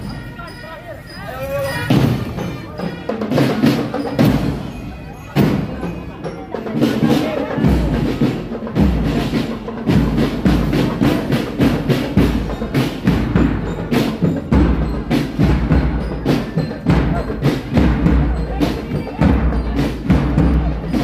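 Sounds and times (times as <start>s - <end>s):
marching drum band: 0.0s - 21.0s.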